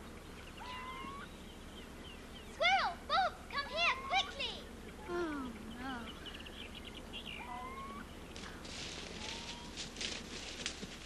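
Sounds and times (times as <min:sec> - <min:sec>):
birds chirping: 0:00.0 - 0:11.0
steady low hum: 0:00.0 - 0:11.0
high rustling crackles: 0:08.4 - 0:11.0.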